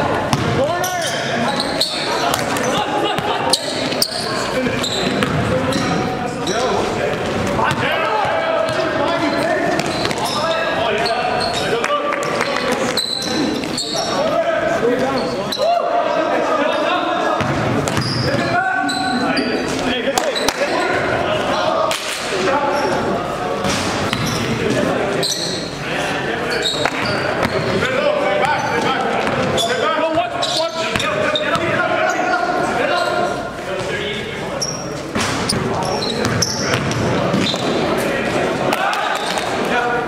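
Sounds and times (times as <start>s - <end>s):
players calling out: 0.0s - 40.0s
basketball bouncing on floor: 0.3s - 0.6s, 5.2s - 5.5s, 36.2s - 37.6s.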